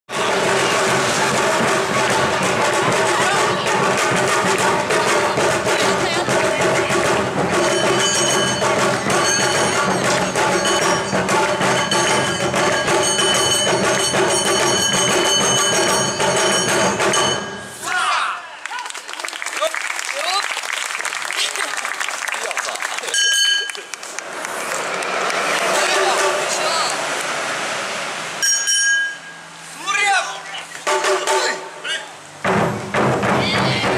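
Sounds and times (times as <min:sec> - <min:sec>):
people clapping: 0:00.1 - 0:14.9, 0:18.5 - 0:27.4
live dance music with drums: 0:00.1 - 0:17.7, 0:32.4 - 0:33.9
voices: 0:00.2 - 0:12.2, 0:21.4 - 0:27.4.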